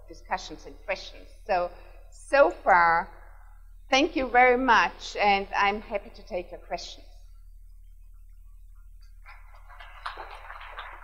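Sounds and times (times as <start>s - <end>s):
low electrical hum: 0.0s - 11.0s
audience applauding: 9.2s - 11.0s.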